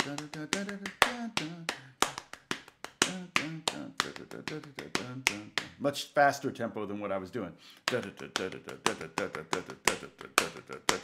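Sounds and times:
sharp hand claps: 0.0s - 5.8s, 7.8s - 11.0s
man's voice: 3.0s - 11.0s.

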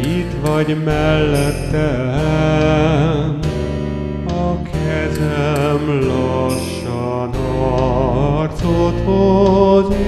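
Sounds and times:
voices singing in harmony: 4.3s - 10.0s.

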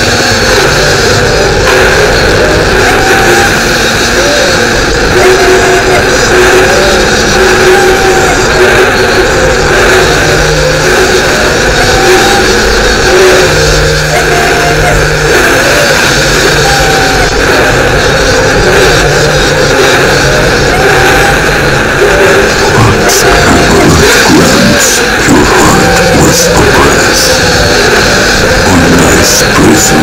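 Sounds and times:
heavily distorted music: 0.0s - 30.0s.

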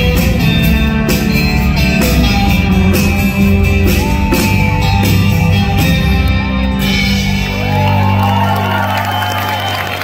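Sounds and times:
crowd cheering and clapping: 6.2s - 10.0s.

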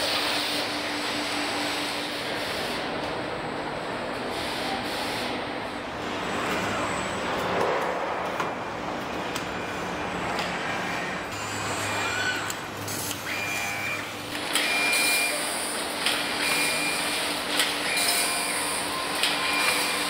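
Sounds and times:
steady mechanical hum: 0.0s - 20.0s.

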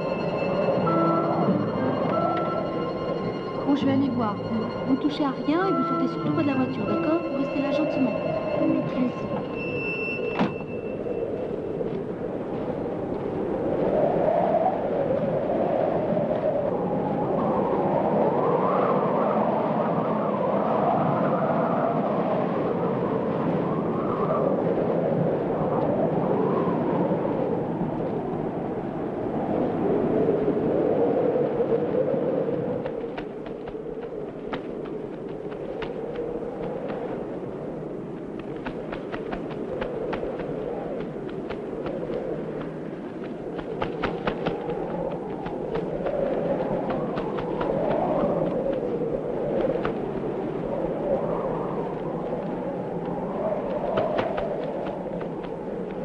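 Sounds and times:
howling gusty wind: 0.0s - 56.0s.

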